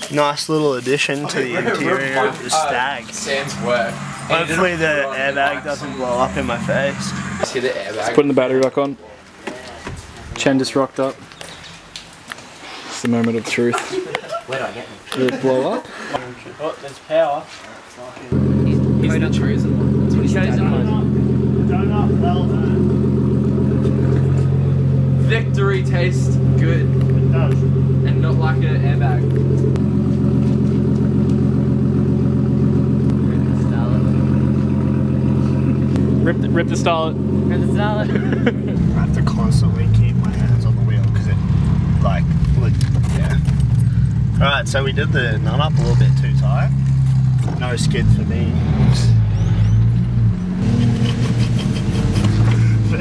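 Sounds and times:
car engine idling: 1.8 - 8.1, 18.3 - 53.0.

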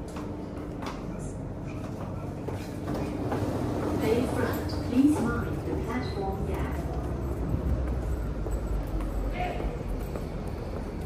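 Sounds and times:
train rumble: 0.0 - 11.0.

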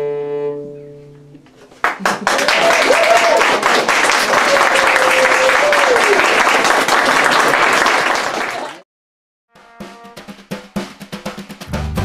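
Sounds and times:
audience applauding: 1.8 - 8.8.

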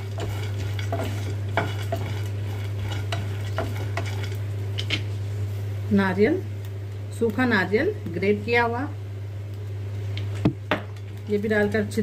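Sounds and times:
nuts rattling in frying pan: 0.0 - 5.0
oil sizzling: 0.0 - 12.0
steady low hum: 0.0 - 12.0.

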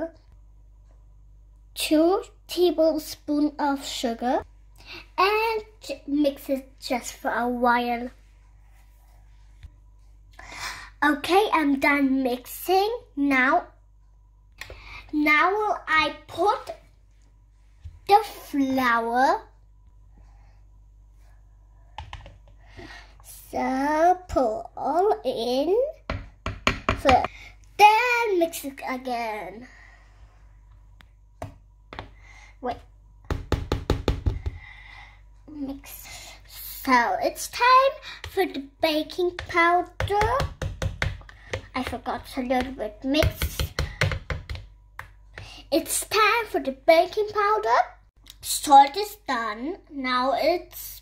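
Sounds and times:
utensil knocking plastic bowl: 39.3 - 42.0.

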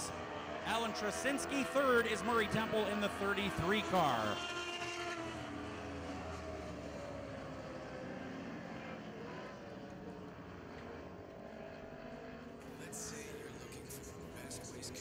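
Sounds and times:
distant race car engines: 0.0 - 15.0
race car engines at low revs: 0.0 - 15.0.

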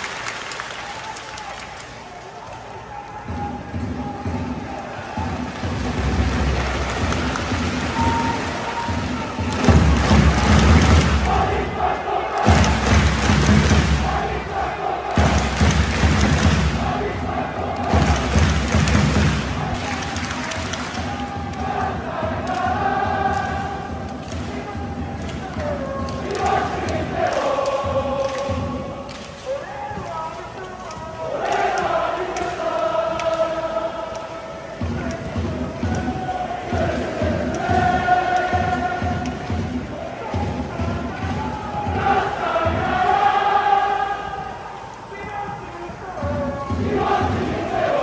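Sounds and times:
drums beating heavily: 3.1 - 29.2, 29.8 - 48.0
football supporters chanting: 3.2 - 48.0.

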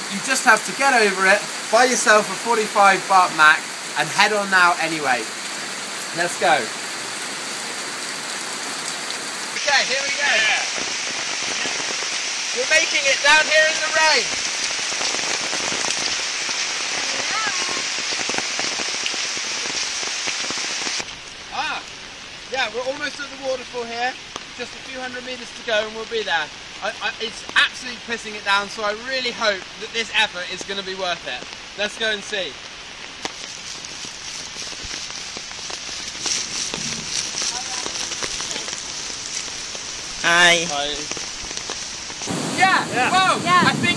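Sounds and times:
person's voice: 0.0 - 5.3, 6.2 - 6.7, 42.4 - 43.9
sharp raindrop hits: 0.0 - 23.6, 24.2 - 43.9
heavy rain: 0.0 - 43.9.

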